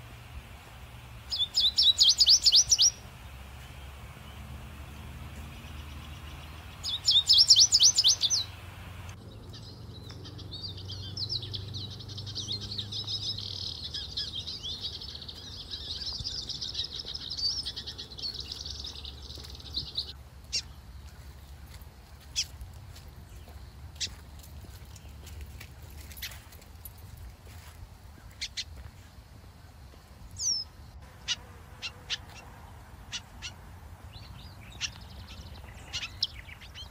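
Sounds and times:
birds calling: 1.2s - 36.9s.

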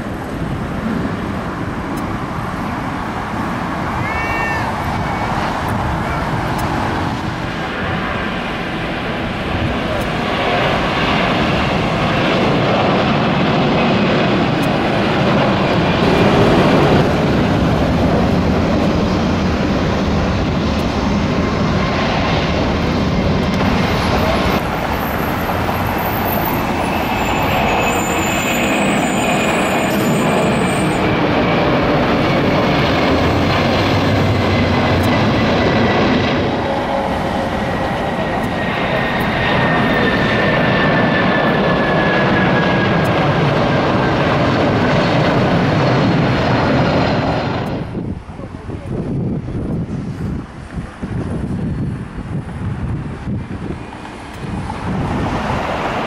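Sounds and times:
high engine whine: 0.0s - 56.0s
jet engines at takeoff: 0.0s - 56.0s.

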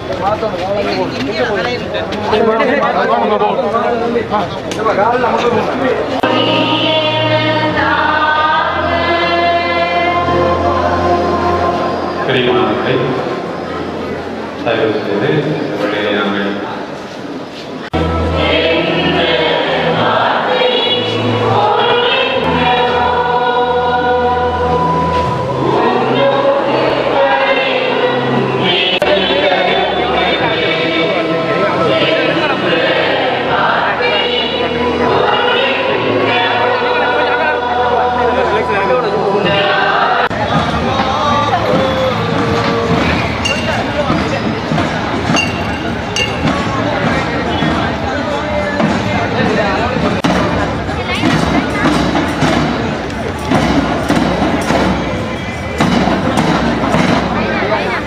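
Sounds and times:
choir singing: 6.2s - 13.7s, 17.9s - 44.3s
marching band drums beating: 40.3s - 58.0s.

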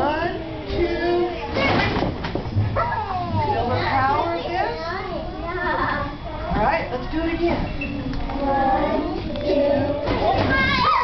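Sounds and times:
children squealing and calling out: 10.2s - 11.0s.

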